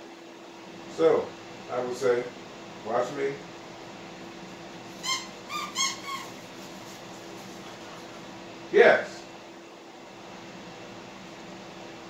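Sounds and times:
dog whining: 5.0s - 6.4s.

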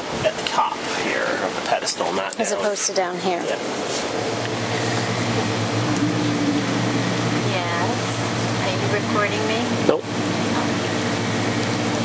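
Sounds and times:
mechanical hum: 0.0s - 12.0s
steady tones: 2.6s - 12.0s.

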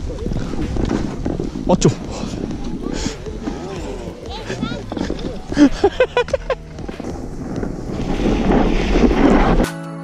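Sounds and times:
wind rushing over microphone: 0.0s - 9.7s
snowboard sliding on snow: 0.0s - 9.9s
person laughing: 5.1s - 6.7s.

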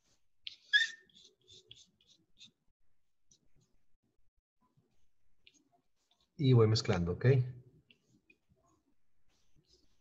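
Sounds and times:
palette knife scraping paint: 0.0s - 2.7s
loud high-pitched squeak: 0.7s - 1.1s.

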